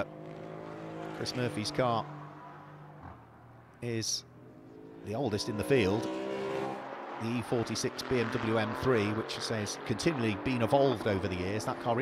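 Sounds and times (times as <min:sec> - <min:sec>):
racing car engines: 0:00.0 - 0:12.0.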